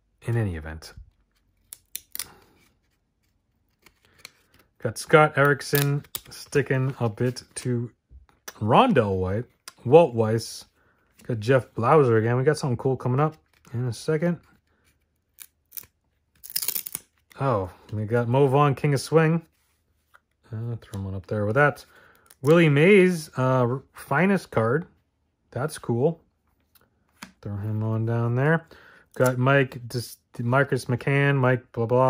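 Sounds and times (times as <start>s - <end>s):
cards snapping: 1.1s - 4.7s, 5.4s - 7.6s, 15.2s - 17.4s.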